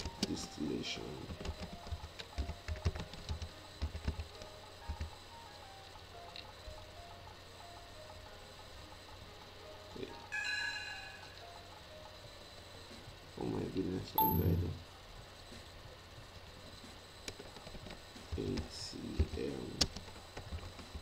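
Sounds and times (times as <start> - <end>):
faint background music: 0.0 - 21.0
keyboard typing: 1.3 - 5.1, 14.2 - 14.6
computer alert chime: 14.2 - 14.8.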